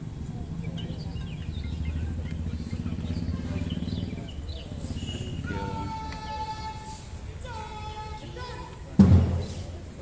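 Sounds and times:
street traffic rumble: 0:00.0 - 0:10.0
birds chirping: 0:00.1 - 0:06.7.

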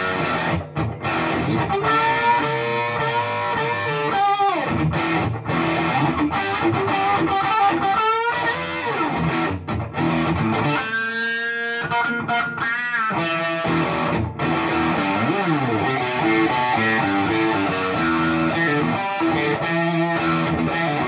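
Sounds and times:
overdriven electric guitar lead: 0:00.0 - 0:21.0.

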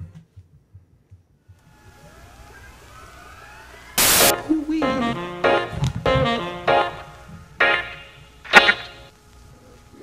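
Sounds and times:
rising electronic whine: 0:01.6 - 0:09.1.

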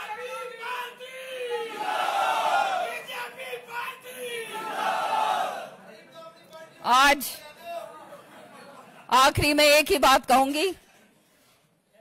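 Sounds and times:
crowd shouting slogans: 0:00.0 - 0:05.8.

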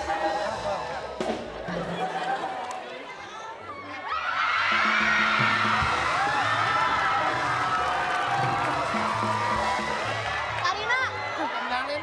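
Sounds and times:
audience cheering and whooping: 0:00.0 - 0:03.1, 0:03.8 - 0:12.0.

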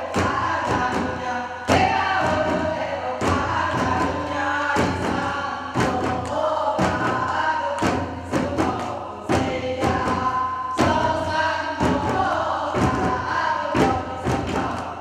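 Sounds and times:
barrel drum beats: 0:00.0 - 0:15.0
women and children singing: 0:00.0 - 0:15.0.

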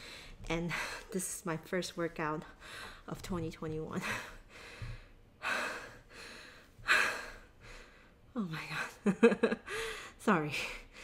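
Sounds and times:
woman breathing hard: 0:04.0 - 0:08.3, 0:09.6 - 0:11.0.

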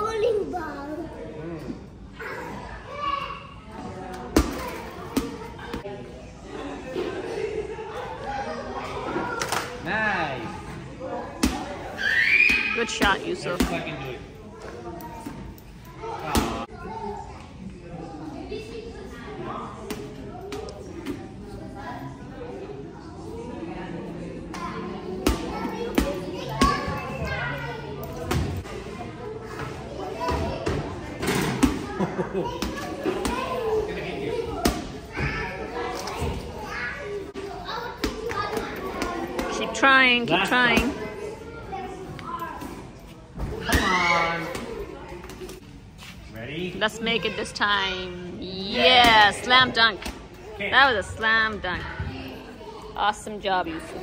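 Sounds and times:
children's voices: 0:00.0 - 0:01.4, 0:02.1 - 0:03.7, 0:31.8 - 0:39.7, 0:41.0 - 0:42.9.

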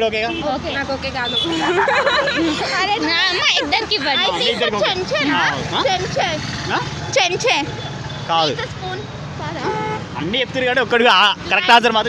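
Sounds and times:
road traffic rumble: 0:00.0 - 0:12.0
voices talking: 0:00.0 - 0:12.0
vehicle horn: 0:01.2 - 0:01.7, 0:09.6 - 0:10.1.

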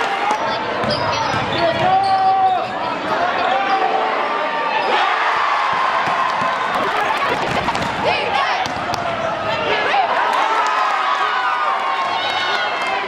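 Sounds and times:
basketball bouncing on court: 0:00.7 - 0:02.2, 0:05.7 - 0:08.0, 0:08.6 - 0:09.1
crowd shouting: 0:01.9 - 0:13.0.

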